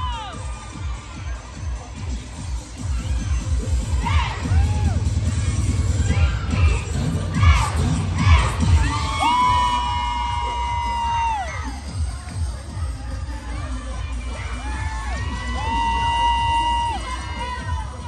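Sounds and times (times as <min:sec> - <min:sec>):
crowd cheering: 0:00.0 - 0:06.7, 0:07.3 - 0:12.8, 0:13.5 - 0:18.0
music with heavy beat: 0:00.0 - 0:18.0
children shouting: 0:02.8 - 0:11.8.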